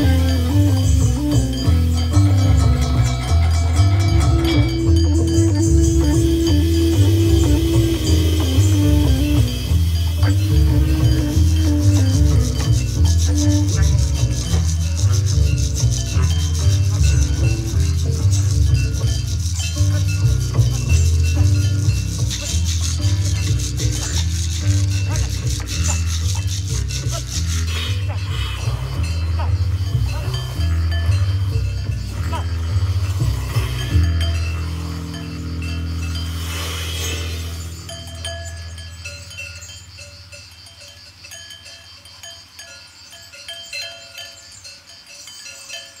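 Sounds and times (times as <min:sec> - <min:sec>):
low held tone: 0:00.0 - 0:26.1
double bass low notes: 0:00.0 - 0:39.0
hand percussion rattle: 0:00.0 - 0:46.0
sheep bells clinking: 0:00.0 - 0:46.0.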